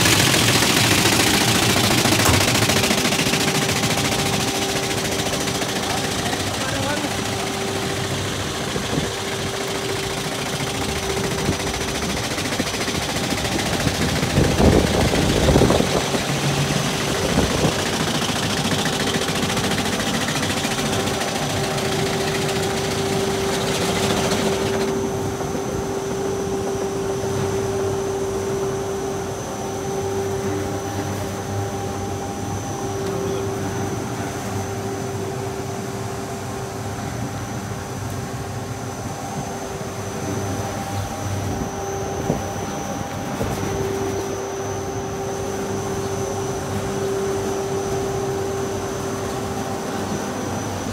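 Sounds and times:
machine knocking: 0.0s - 27.6s
rug-beating machine humming: 0.0s - 50.9s.

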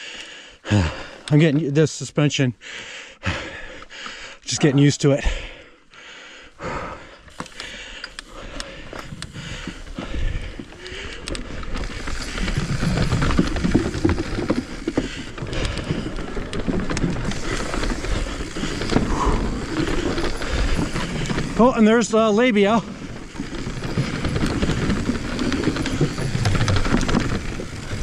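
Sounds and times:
tyres rumbling over wooden boardwalk: 6.6s - 28.0s
bike clicks and knocks: 7.2s - 21.8s, 22.9s - 28.0s.

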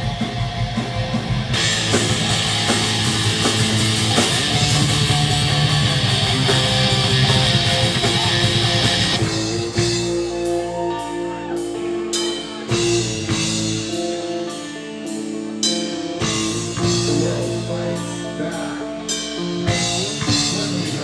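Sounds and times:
drum hits: 0.0s - 10.2s
heavy metal band playing: 0.0s - 21.0s.

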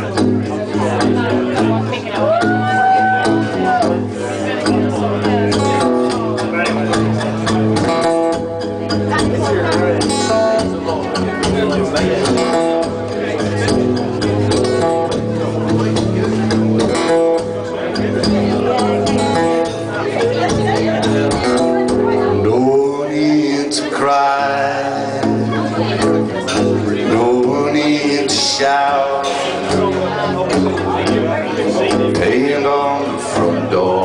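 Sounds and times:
acoustic guitar strummed and picked: 0.0s - 34.0s.

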